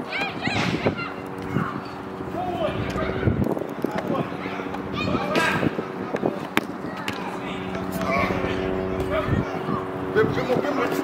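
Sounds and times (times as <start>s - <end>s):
steady droning hum: 0.0s - 11.0s.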